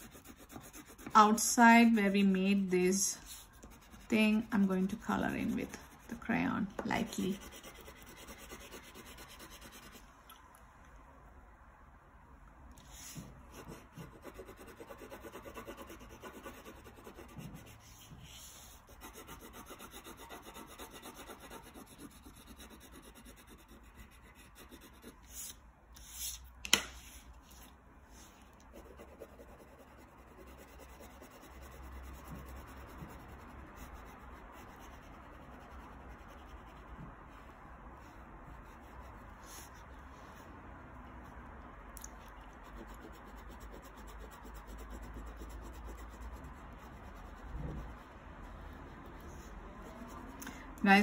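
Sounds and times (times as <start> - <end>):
crayon rubbing on paper: 0.0 - 1.2, 3.2 - 6.2, 7.0 - 10.0, 13.0 - 26.3.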